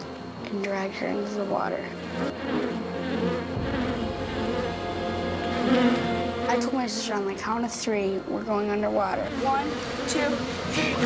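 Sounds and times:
wasps buzzing: 0.0 - 11.0
dramatic music score: 0.1 - 11.0
low rumble: 1.4 - 11.0.

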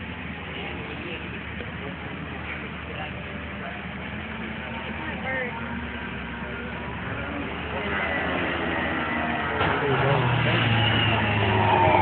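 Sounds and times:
spectators chattering: 0.0 - 12.0
snowmobile engine droning: 6.2 - 12.0.

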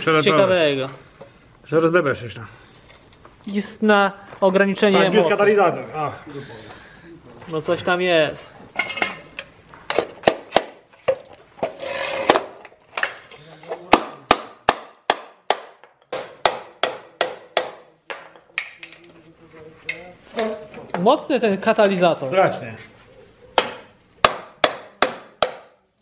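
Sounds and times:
metal scraping: 11.6 - 12.4.

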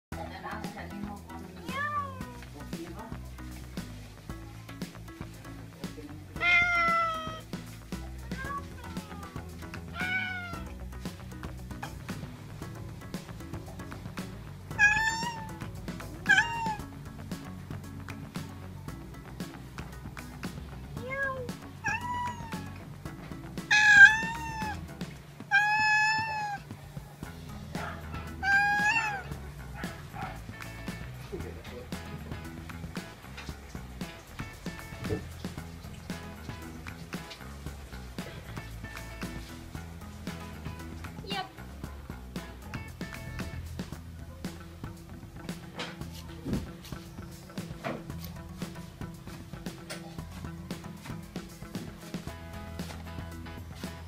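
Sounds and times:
background music with beat: 0.1 - 54.0
cat meowing: 1.6 - 2.5, 6.3 - 7.5, 8.2 - 10.8, 14.7 - 17.0, 21.0 - 22.9, 23.6 - 26.7, 28.2 - 29.9.

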